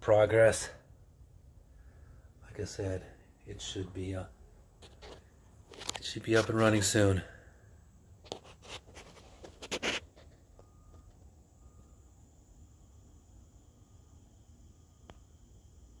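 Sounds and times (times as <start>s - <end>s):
faint steady high whine: 0.0s - 16.0s
clicks and rustles: 4.8s - 6.6s.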